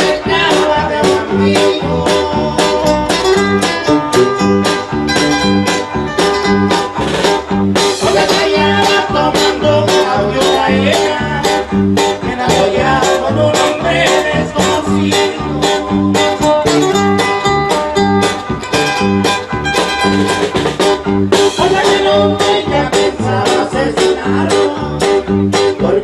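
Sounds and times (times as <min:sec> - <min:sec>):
bass alternating low notes: 0:00.0 - 0:26.0
strummed guitars: 0:00.0 - 0:26.0.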